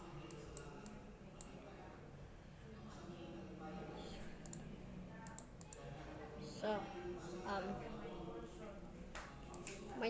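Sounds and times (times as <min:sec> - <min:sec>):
faint background voices: 0:00.0 - 0:10.0.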